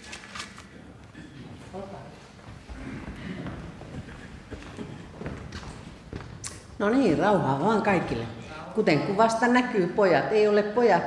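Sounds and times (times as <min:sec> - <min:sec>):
shuffling: 0:00.2 - 0:06.9
footsteps on hard floor: 0:01.4 - 0:06.8
woman speaking into microphone: 0:06.8 - 0:11.0.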